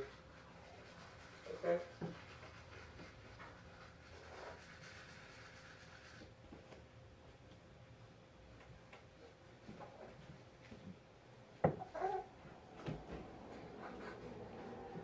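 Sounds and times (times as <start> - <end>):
toothbrush scrubbing teeth: 0.0 - 6.3.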